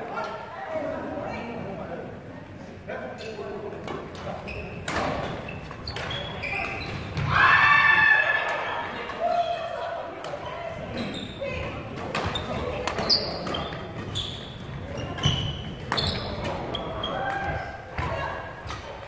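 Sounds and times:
players' voices: 0.0s - 19.0s
sneakers squeaking on wooden court: 4.1s - 7.3s, 10.4s - 19.0s.

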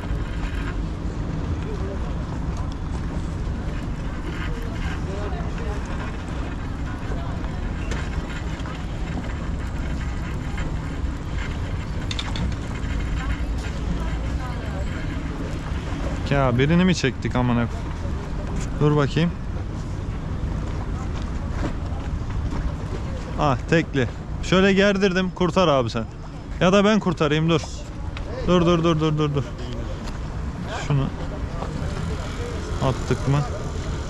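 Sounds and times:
distant voices: 0.0s - 34.0s
wind: 0.0s - 34.0s.

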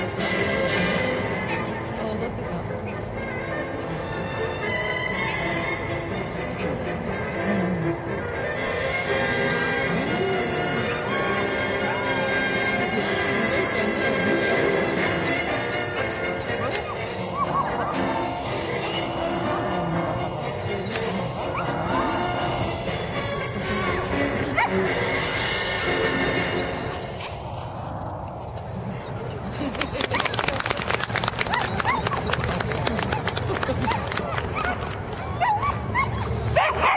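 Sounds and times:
music: 0.0s - 27.2s
people's voices: 0.0s - 36.6s
dog yipping: 1.5s - 1.9s, 15.1s - 18.2s, 21.5s - 22.1s, 23.8s - 24.8s, 28.2s - 36.9s.

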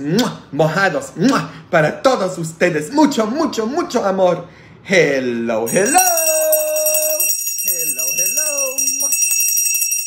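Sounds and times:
hand bell ringing rapidly: 5.7s - 10.0s.

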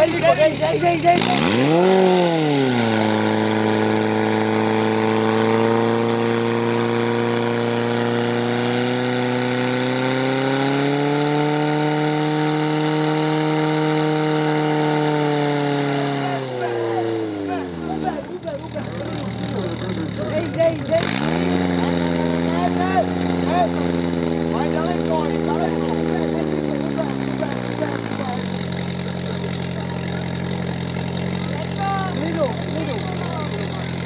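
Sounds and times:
pump engine running at high revs: 0.0s - 34.0s.

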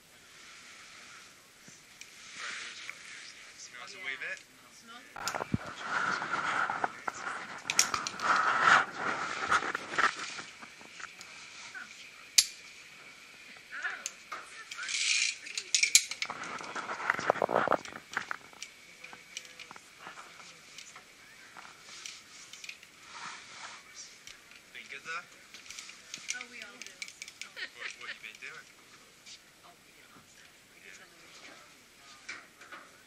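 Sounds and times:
handling rustle: 4.4s - 29.5s
carabiners and pulley clinking: 14.7s - 16.7s.

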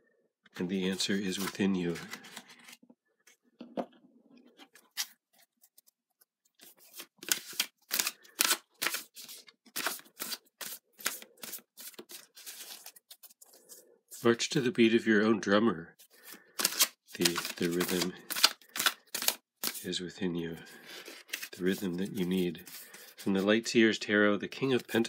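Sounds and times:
cards snapping and rustling: 6.6s - 13.4s, 16.2s - 19.8s, 20.9s - 23.2s.

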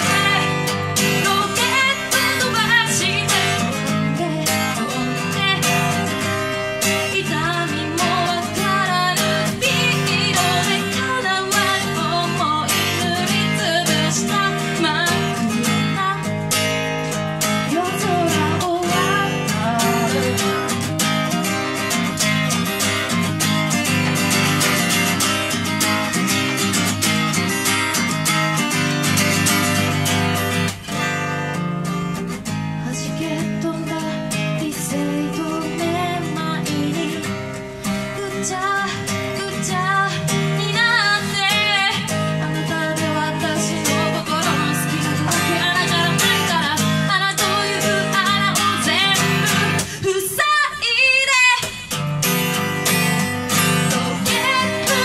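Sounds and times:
woman singing: 0.0s - 25.8s, 32.5s - 52.4s, 53.5s - 55.0s
strummed acoustic guitar: 0.0s - 55.0s.

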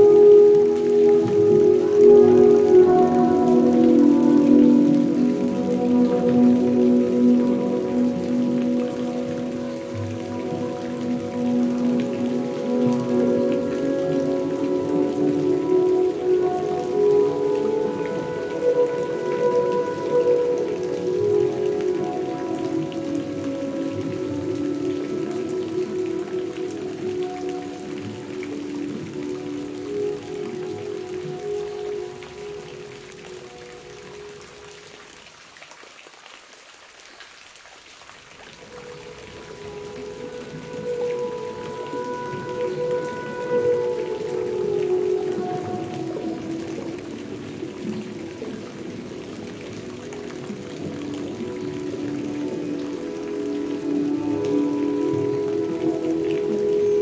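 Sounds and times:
ambient music: 0.0s - 35.3s, 38.4s - 57.0s
rain falling: 0.0s - 57.0s.

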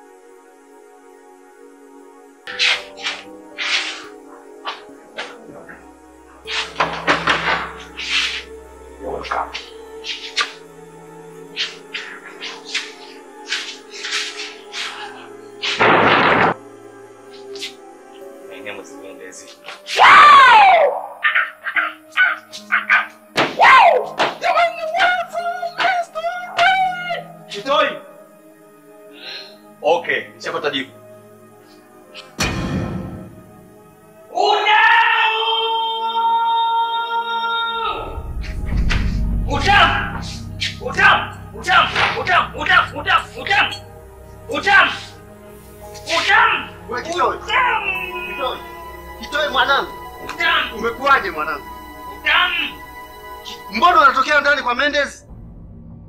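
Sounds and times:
man yelling: 20.0s - 21.1s, 34.3s - 38.1s, 46.1s - 46.7s, 47.3s - 48.6s.

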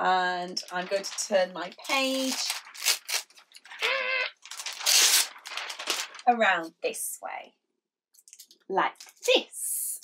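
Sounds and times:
paper rustling and crinkling: 0.4s - 6.7s.

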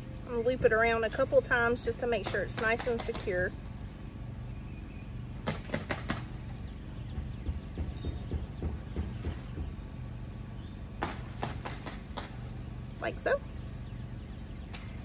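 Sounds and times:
low background rumble: 0.0s - 15.0s.

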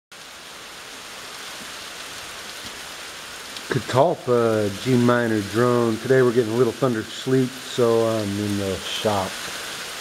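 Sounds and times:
sleet hissing on a roof: 0.2s - 10.0s.

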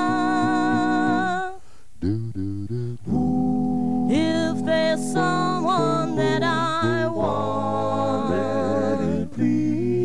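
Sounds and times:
a cappella group humming a chord: 0.0s - 10.0s.

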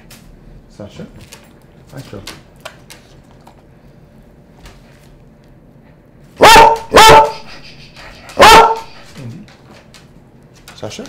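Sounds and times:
dog barking: 6.4s - 7.7s, 8.3s - 9.2s.

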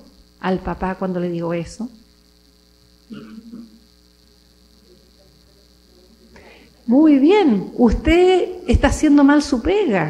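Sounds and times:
electrical mains hum: 0.0s - 10.0s
faint high whine: 0.0s - 10.0s.

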